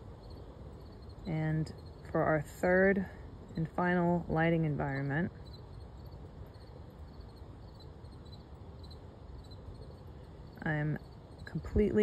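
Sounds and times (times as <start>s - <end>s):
crickets chirping: 0.0s - 12.0s
outdoor background noise: 0.0s - 12.0s.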